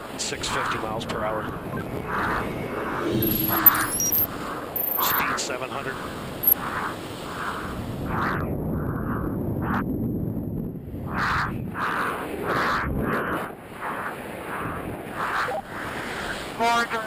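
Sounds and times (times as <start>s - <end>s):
rushing air noise: 0.0s - 10.0s.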